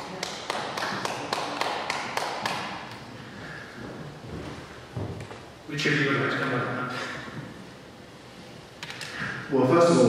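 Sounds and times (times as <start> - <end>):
people clapping in a hall: 0.0 - 3.2.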